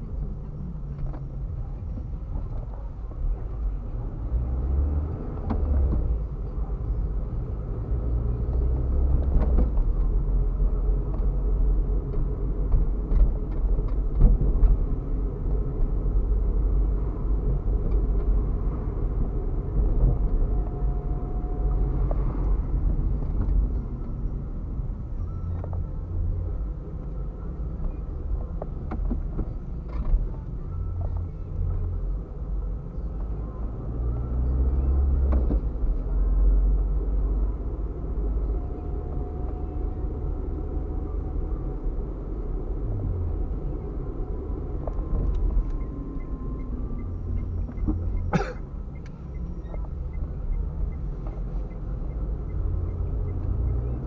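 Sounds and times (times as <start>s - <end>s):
car road and engine rumble: 0.0s - 54.0s.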